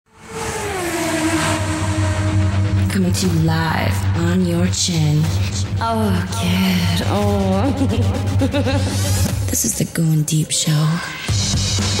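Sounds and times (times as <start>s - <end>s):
low pulsing bass: 1.6s - 9.7s.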